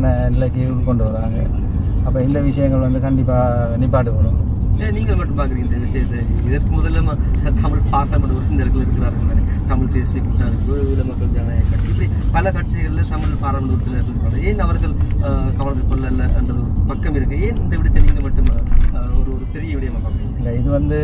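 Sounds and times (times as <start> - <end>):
car road and engine rumble: 0.0 - 21.0
man talking: 0.0 - 21.0.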